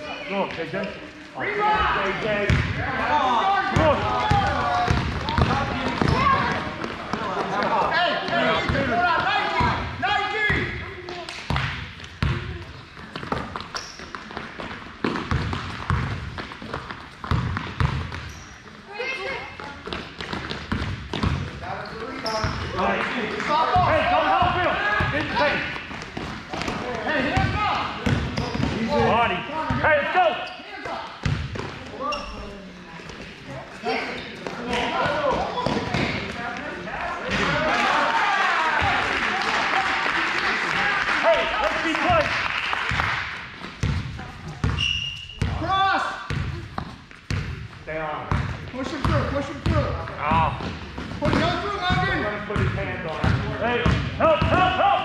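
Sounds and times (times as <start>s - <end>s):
crowd noise: 0.0s - 55.0s
basketball bouncing on hardwood floor: 3.8s - 7.0s, 14.4s - 18.3s, 19.9s - 21.5s, 43.8s - 44.8s.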